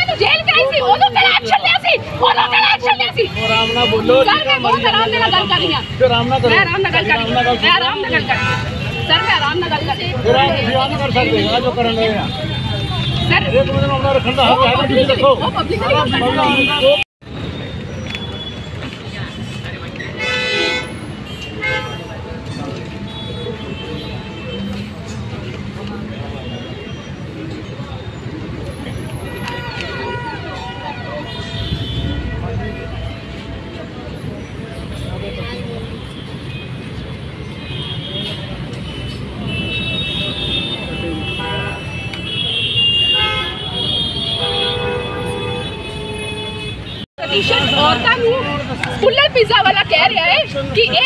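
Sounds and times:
street and crowd background: 0.0s - 51.0s
traffic: 0.0s - 51.0s
vehicle horns: 2.8s - 18.6s, 20.1s - 27.4s, 28.9s - 51.0s
vehicle horn honking: 3.3s - 6.0s, 15.9s - 17.0s, 29.3s - 33.3s, 39.4s - 48.2s.

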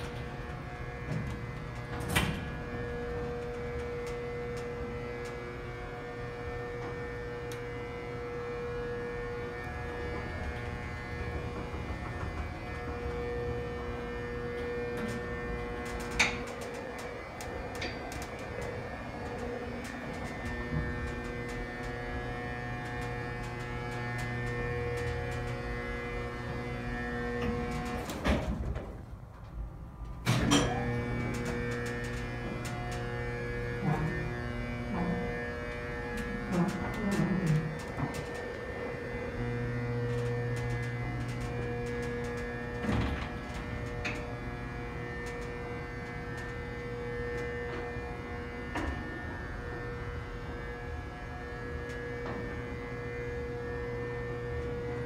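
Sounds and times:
clunks: 0.0s - 55.0s
elevator machinery humming: 0.0s - 55.0s.

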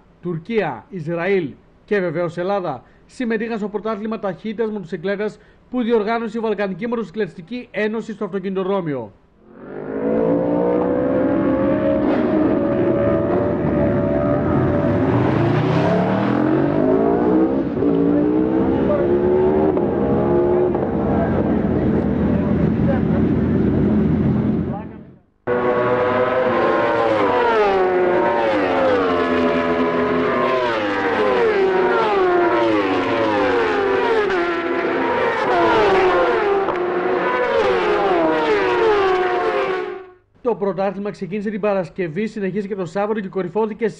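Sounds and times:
motorcycle engines revving and passing: 9.4s - 24.8s, 25.5s - 40.2s.

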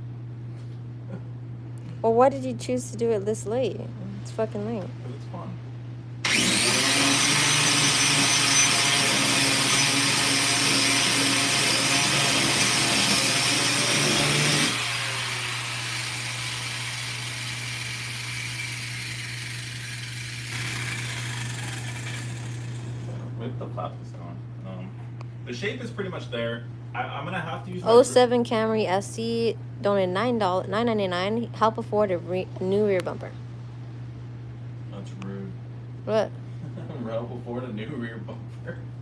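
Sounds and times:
steady low hum: 0.0s - 39.0s
power tool whirring: 6.2s - 23.2s.

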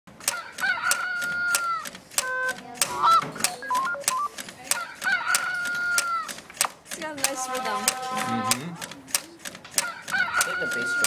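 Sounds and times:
motor-driven lever clacking on plastic: 0.2s - 11.0s
electronic tones and beeps: 2.2s - 4.4s.

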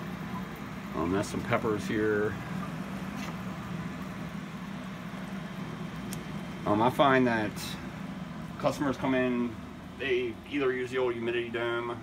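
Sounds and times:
low pump hum: 0.0s - 12.0s.

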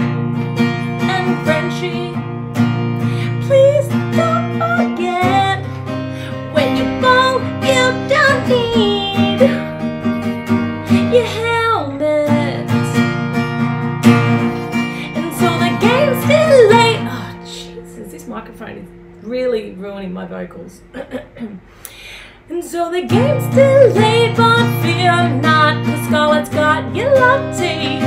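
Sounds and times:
woman singing: 0.0s - 13.4s, 14.4s - 21.4s, 22.5s - 28.0s
acoustic guitar strumming: 0.0s - 21.8s, 22.9s - 28.0s.

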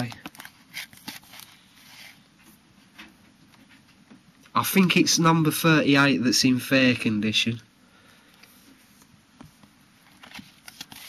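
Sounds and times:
plastic sleeves rustling and clicking: 0.0s - 1.6s, 10.0s - 11.0s.

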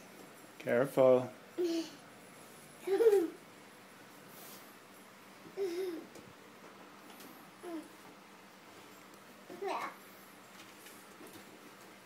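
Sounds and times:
toddler babbling: 1.6s - 2.0s, 7.6s - 7.9s, 9.5s - 10.0s.

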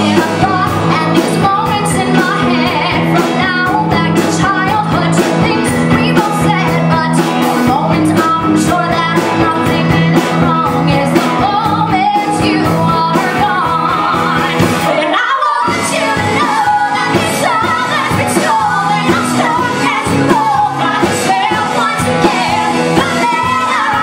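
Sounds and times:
live rock band: 0.0s - 24.0s
women singing a duet: 0.0s - 24.0s.

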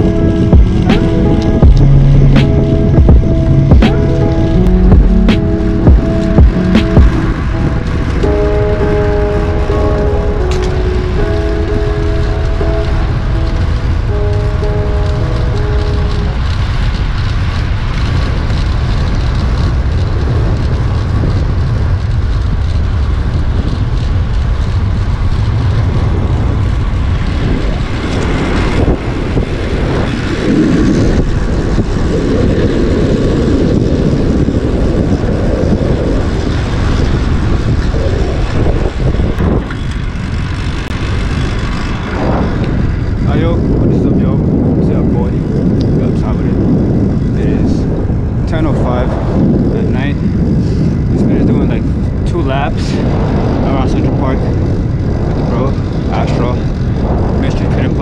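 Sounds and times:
traffic noise: 0.0s - 58.0s
wind buffeting microphone: 0.0s - 58.0s.

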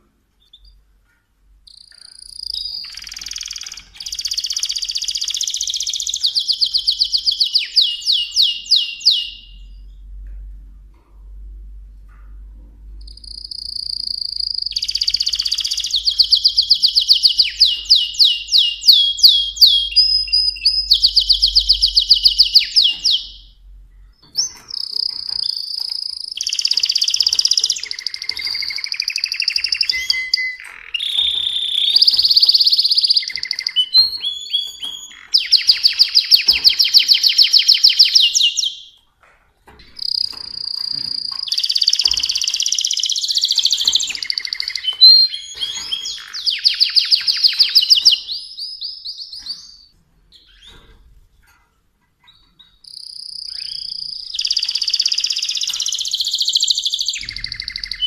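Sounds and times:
canary singing trills: 0.4s - 0.9s, 1.5s - 10.2s, 13.0s - 39.0s, 39.8s - 51.1s, 52.2s - 58.0s.

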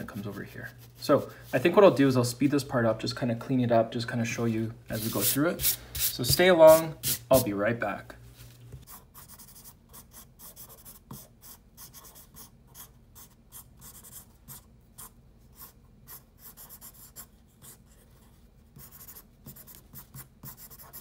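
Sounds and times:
pencil sketching on paper: 8.9s - 21.0s.

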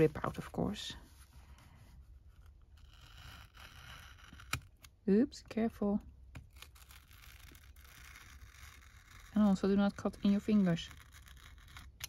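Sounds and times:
knife scraping through paper: 6.6s - 11.9s.

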